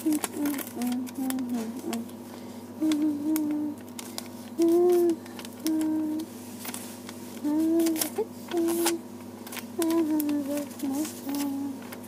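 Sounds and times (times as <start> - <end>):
person humming a tune: 0.0 - 2.2, 2.8 - 3.8, 4.5 - 6.3, 7.4 - 9.0, 9.8 - 11.9.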